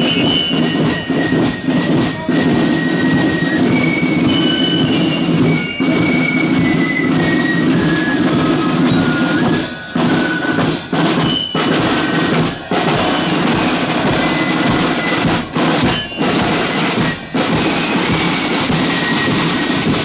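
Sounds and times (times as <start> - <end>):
bell lyre high notes: 0.0 - 20.0
marching band playing: 0.0 - 20.0
snare and bass drum rolls: 0.0 - 20.0.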